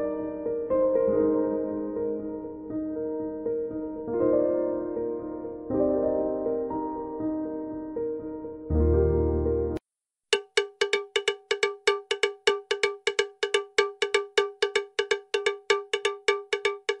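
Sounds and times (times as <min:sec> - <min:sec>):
soft instrumental music: 0:00.0 - 0:09.8.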